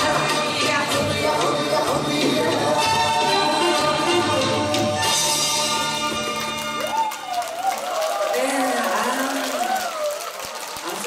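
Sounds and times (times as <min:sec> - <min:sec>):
audience applauding: 0:04.7 - 0:11.0
woman's voice: 0:08.3 - 0:09.7.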